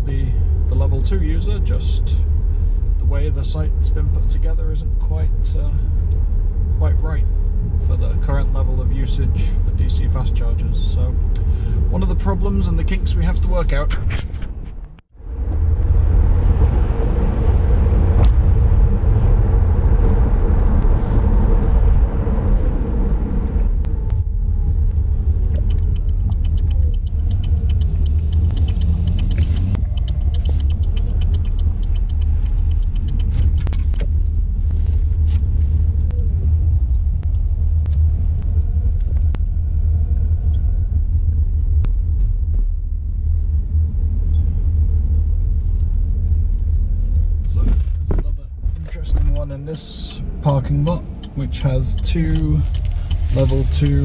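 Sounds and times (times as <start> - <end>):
tyres rumbling on road: 0.0 - 54.0.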